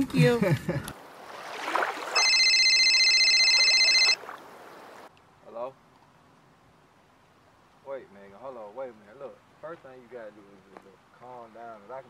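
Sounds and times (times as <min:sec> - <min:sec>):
mobile phone ringing: 0:02.2 - 0:04.2.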